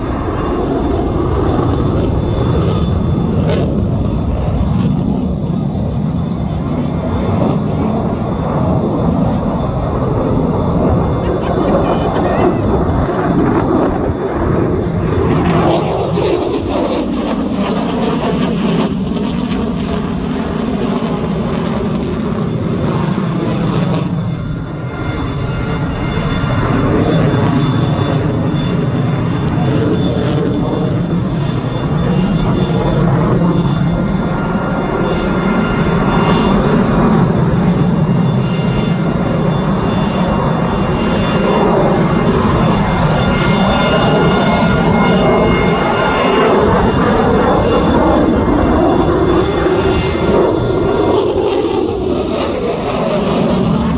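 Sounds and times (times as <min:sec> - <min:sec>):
jet engines roaring in flight: 0:00.0 - 0:53.9.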